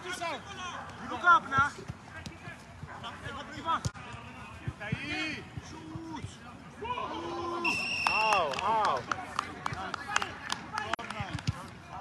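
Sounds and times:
players calling: 0.0 - 12.0.

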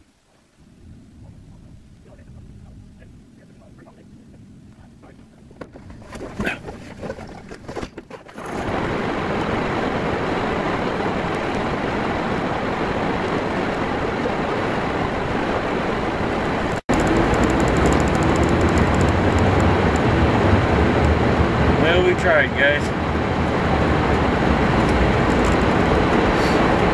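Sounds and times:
low engine hum: 0.6 - 26.9
heater blower air rush: 8.4 - 26.9.

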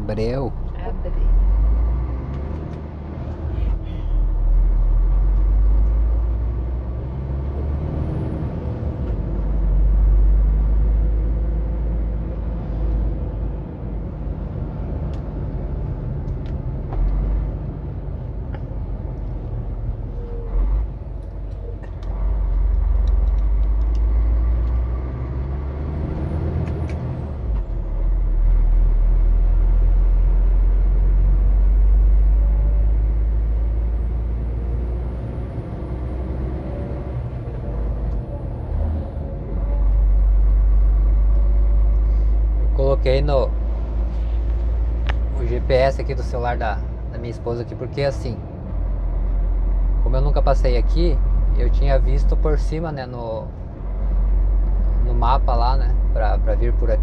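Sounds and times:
road noise inside cab: 0.0 - 57.0
truck engine drone: 0.0 - 57.0.

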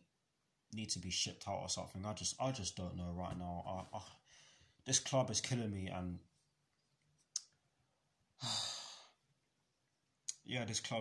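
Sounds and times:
mouth click: 7.3 - 7.6
man sighing: 8.4 - 9.2.

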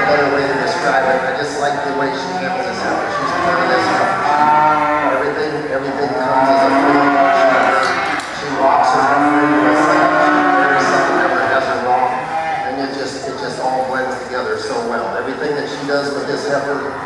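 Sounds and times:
cattle mooing: 0.0 - 13.2.

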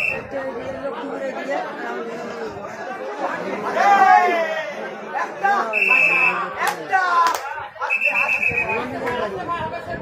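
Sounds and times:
whistle blast: 0.0 - 0.3, 5.7 - 6.5, 7.9 - 8.8
men talking in a crowd: 0.0 - 10.0
loud shouted call: 5.4 - 9.0.

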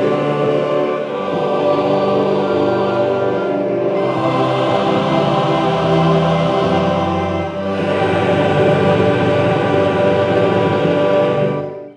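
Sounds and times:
choir singing gospel: 0.0 - 11.9.

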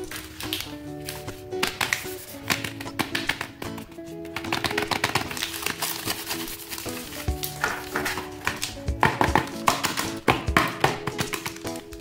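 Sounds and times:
plastic wrappers crinkling: 0.0 - 8.8, 11.0 - 12.0
background music with held notes: 0.0 - 12.0.

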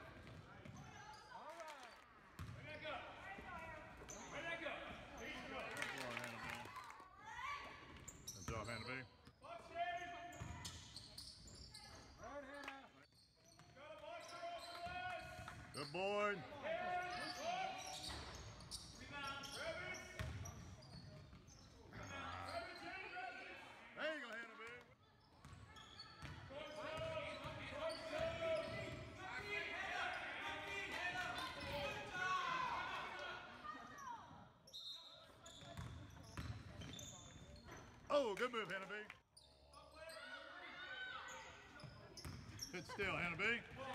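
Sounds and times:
basketball bouncing: 2.4 - 2.6, 35.8 - 36.6
sneaker squeaks: 8.0 - 9.4, 10.0 - 12.2, 13.0 - 23.1, 25.0 - 29.2, 33.9 - 38.1, 39.3 - 43.7.

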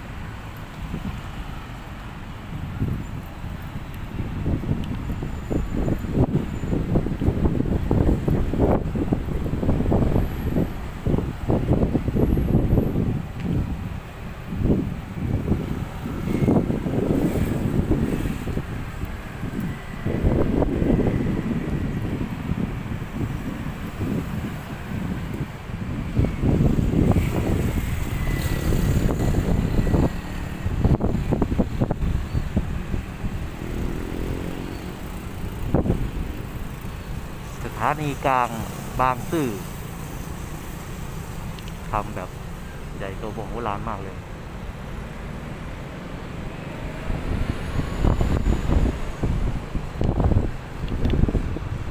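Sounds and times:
gusty wind buffeting microphone: 0.0 - 51.9
road traffic passing: 0.0 - 51.9.

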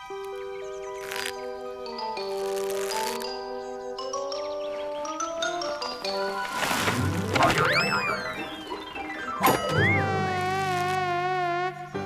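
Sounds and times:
buzzing drone: 7.1 - 12.0
wavering higher tone: 7.3 - 11.4.

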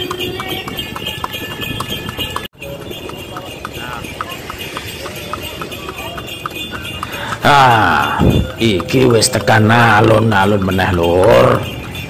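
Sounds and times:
hooves clip-clopping on asphalt: 0.0 - 12.0
road noise: 0.0 - 12.0.

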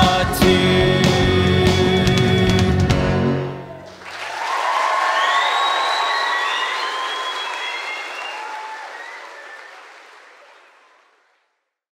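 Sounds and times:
crowd applauding and cheering: 3.6 - 11.6.

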